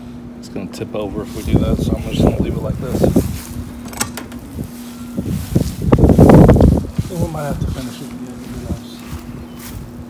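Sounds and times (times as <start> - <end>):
faint steady hum: 0.0 - 10.0
wind buffeting microphone: 1.4 - 10.0.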